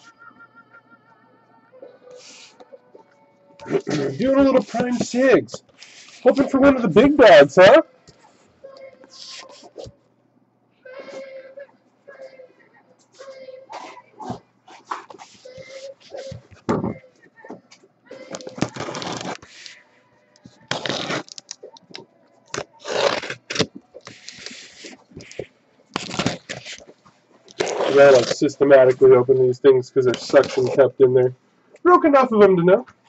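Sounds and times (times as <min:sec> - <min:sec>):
box cutter slicing packing tape: 0:18.6 - 0:19.5, 0:20.7 - 0:21.4, 0:22.6 - 0:24.7, 0:26.0 - 0:26.8.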